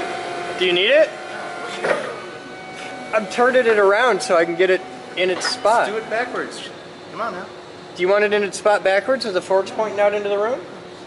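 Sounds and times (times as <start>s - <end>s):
forklift running with whine: 0.0s - 11.0s.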